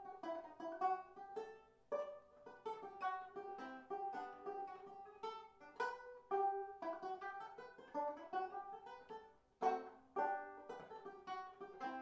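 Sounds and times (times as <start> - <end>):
fingerstyle banjo: 0.0 - 12.0.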